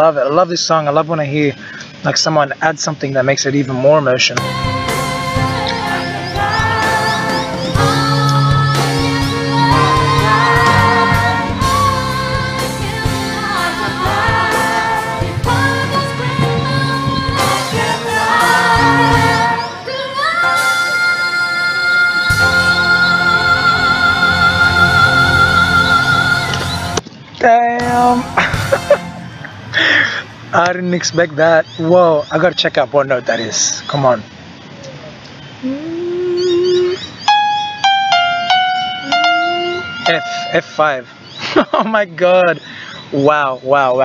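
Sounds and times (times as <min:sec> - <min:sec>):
choir and band backing: 0:04.4 - 0:27.0
keyboard notes: 0:04.4 - 0:27.1, 0:27.8 - 0:30.5, 0:37.2 - 0:41.4
man singing: 0:27.8 - 0:28.3
person humming: 0:35.6 - 0:37.0, 0:39.0 - 0:40.0.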